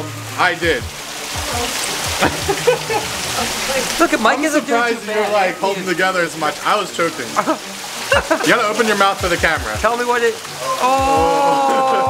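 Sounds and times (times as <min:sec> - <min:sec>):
steady hiss: 0:00.0 - 0:12.0
people laughing: 0:01.5 - 0:03.9, 0:07.2 - 0:09.0, 0:10.6 - 0:12.0.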